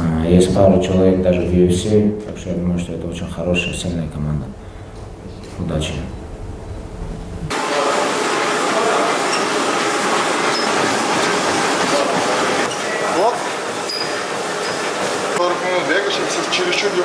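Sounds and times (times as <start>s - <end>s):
low room hum: 0.0s - 9.2s
treadmills whirring: 4.6s - 17.0s
people walking and jogging: 7.5s - 16.9s.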